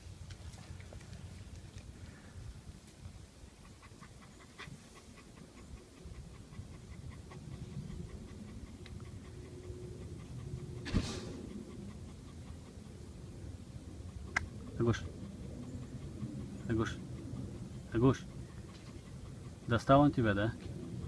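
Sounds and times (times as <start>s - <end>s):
dog panting: 0.4s - 21.0s
sharp thump: 10.8s - 11.4s.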